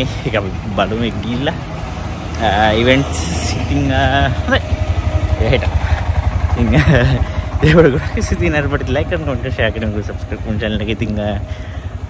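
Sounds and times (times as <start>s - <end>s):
auto rickshaw engine idling: 0.0s - 12.0s.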